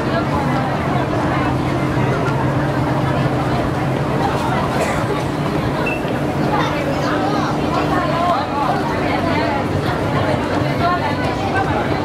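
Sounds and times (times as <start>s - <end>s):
bus engine humming: 0.0s - 9.1s
people chattering: 0.0s - 12.0s
street traffic: 0.0s - 12.0s.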